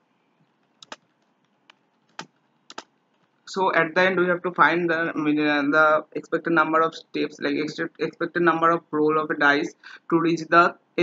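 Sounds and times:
quiet keyboard keystrokes: 0.7 - 1.0, 2.1 - 2.9.

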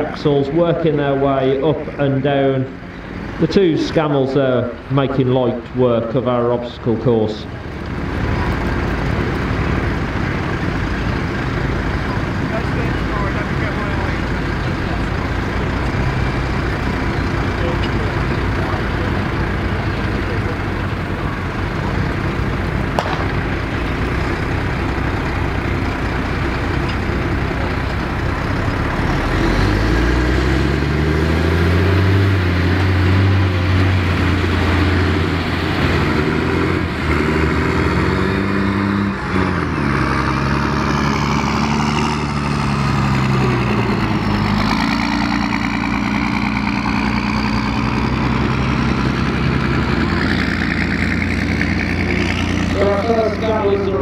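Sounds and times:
truck engines working under load: 0.0 - 54.0.

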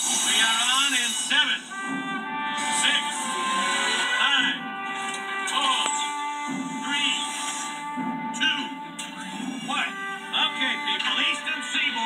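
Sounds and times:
trailer music from television: 0.0 - 12.0.

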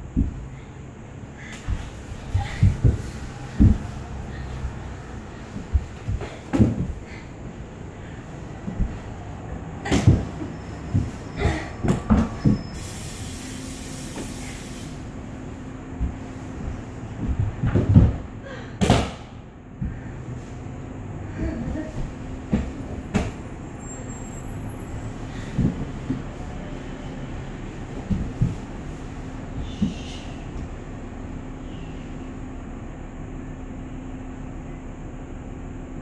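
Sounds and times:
faint steady hum: 0.0 - 36.0
bodies thudding on concrete floor: 0.1 - 0.6, 1.4 - 12.9, 15.9 - 20.2, 21.6 - 23.6, 25.3 - 30.7.

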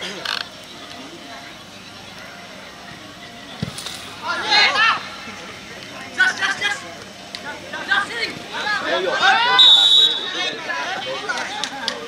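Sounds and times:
football kick thud: 3.6 - 4.0.

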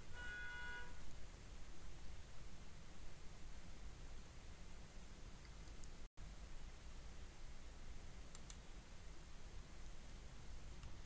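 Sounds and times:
faint high-pitched tone: 0.0 - 1.1
low background hum: 0.0 - 11.0.

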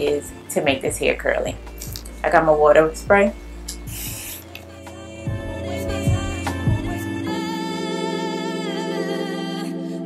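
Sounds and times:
background music: 0.0 - 10.0
water spray bottle hiss: 3.7 - 4.6.

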